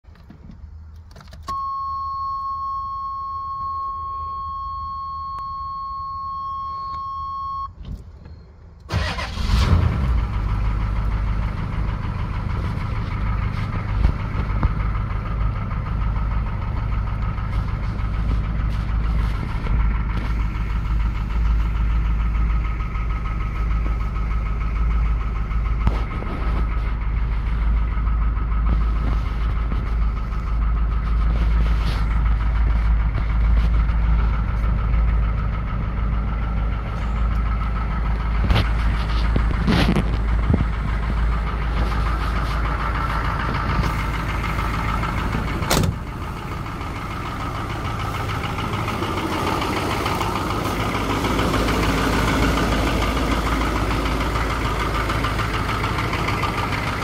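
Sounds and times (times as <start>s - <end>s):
diesel engine starting and idling: 0.0s - 57.0s.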